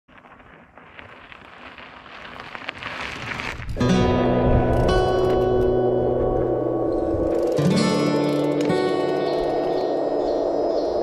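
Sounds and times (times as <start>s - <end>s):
bike tyres crackling over shale: 0.1s - 11.0s
music: 3.8s - 10.7s.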